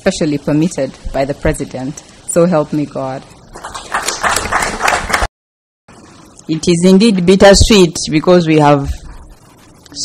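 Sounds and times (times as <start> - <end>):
applause: 3.6 - 5.3.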